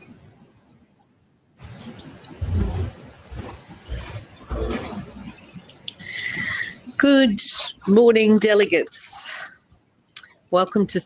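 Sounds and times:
dull low thumps: 0:02.3 - 0:05.5.

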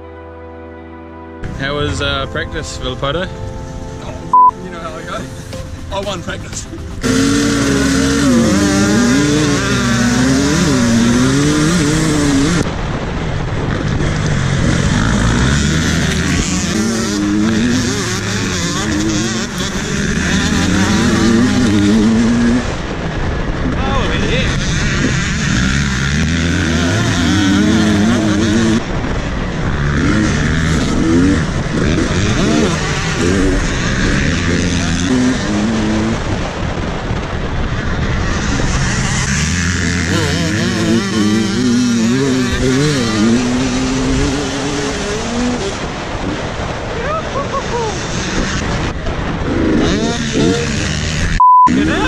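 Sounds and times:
steady rushing noise: 0:01.4 - 0:52.0
dirt bike engine revving: 0:05.4 - 0:52.0.

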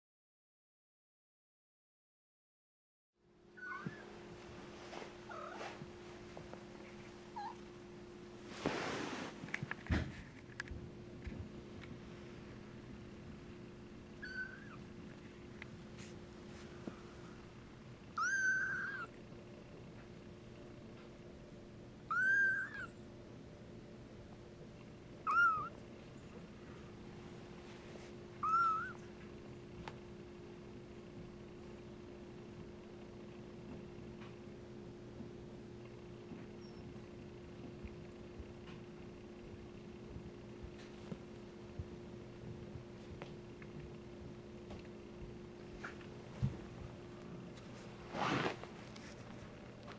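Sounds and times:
steady low hum: 0:03.2 - 0:49.9
kittens mewing: 0:14.2 - 0:14.9, 0:18.1 - 0:19.2, 0:22.1 - 0:23.0, 0:25.2 - 0:25.8, 0:28.4 - 0:29.1.

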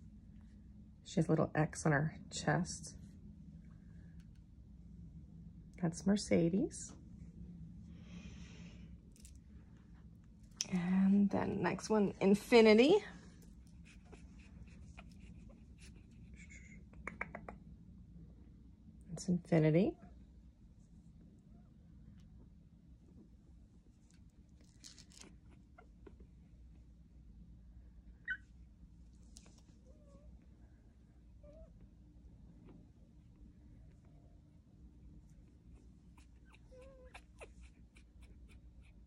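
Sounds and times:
low room hum: 0:00.0 - 0:39.0
puppy squeaking: 0:28.2 - 0:28.4, 0:36.2 - 0:39.0
puppy whimpering: 0:28.2 - 0:28.4, 0:35.7 - 0:39.0.

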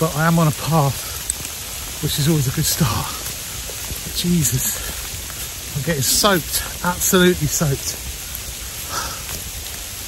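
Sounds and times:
heavy rain in woodland: 0:00.0 - 0:10.0.

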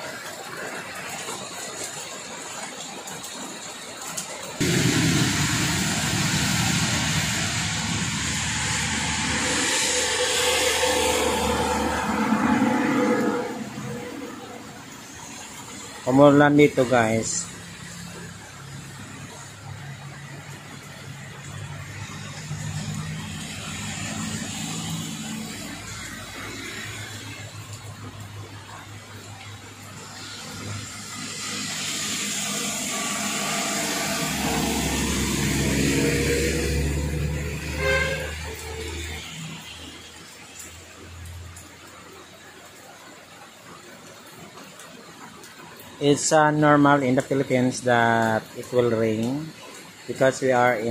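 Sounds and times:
heavy rain falling: 0:00.0 - 0:50.9
tyre hiss on wet road: 0:04.6 - 0:16.8, 0:17.4 - 0:43.8
truck engine rumble: 0:04.6 - 0:41.8.

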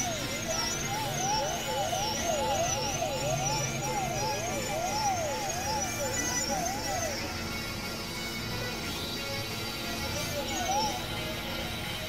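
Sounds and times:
warbling synthesized tone: 0:00.0 - 0:07.6
steady drones and noise: 0:00.0 - 0:12.0.

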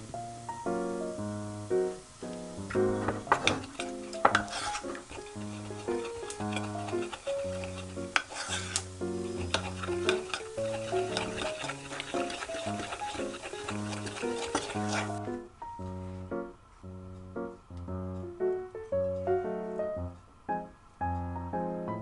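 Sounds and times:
background music: 0:00.0 - 0:22.0
spoon scraping ceramic bowl: 0:03.2 - 0:15.2.

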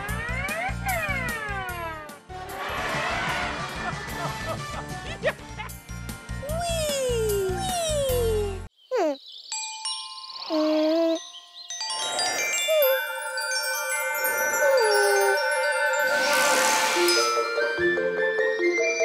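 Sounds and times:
cartoon theme music: 0:00.0 - 0:08.7, 0:11.8 - 0:19.0
ringing chime tones: 0:09.6 - 0:19.0
shimmering swell: 0:11.8 - 0:18.2.

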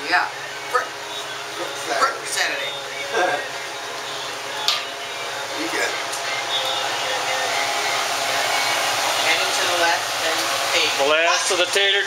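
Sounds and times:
oil sizzling while deep-frying: 0:00.0 - 0:12.0.

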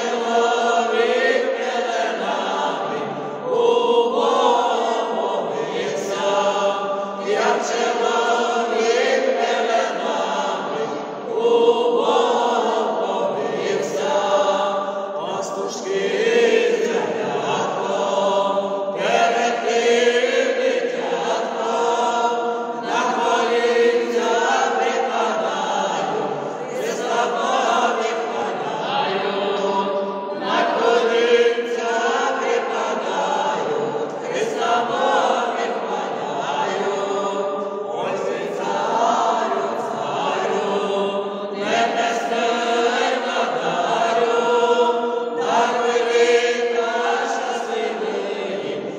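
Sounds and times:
choir singing unaccompanied: 0:00.0 - 0:48.9.

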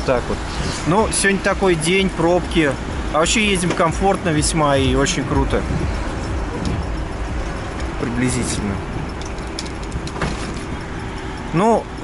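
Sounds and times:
road traffic rumble: 0:00.0 - 0:12.0
light clicks and rattles: 0:06.2 - 0:12.0.

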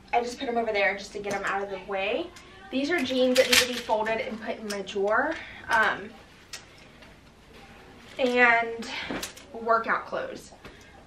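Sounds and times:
plastic clothes hangers clicking: 0:03.0 - 0:04.8.

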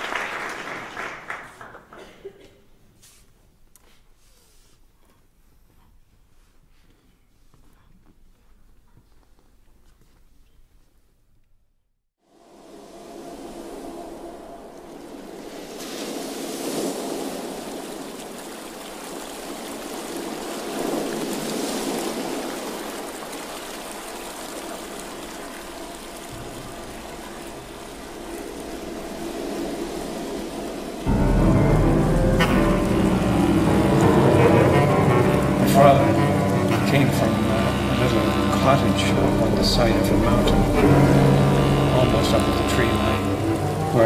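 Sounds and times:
chamber ensemble bowed strings: 0:30.6 - 0:44.0.

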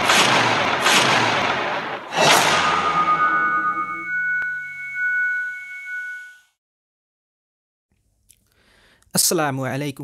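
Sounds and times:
ringing chime note: 0:02.2 - 0:06.5.

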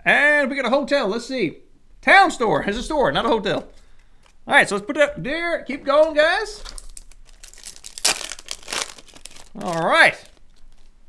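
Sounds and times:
foil wrapper crinkling and tearing: 0:06.5 - 0:11.0.

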